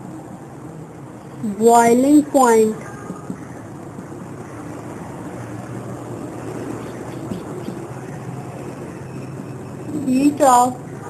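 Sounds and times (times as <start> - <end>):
low background drone: 0.0 - 11.0
marker writing on whiteboard: 2.9 - 4.1, 6.8 - 8.0.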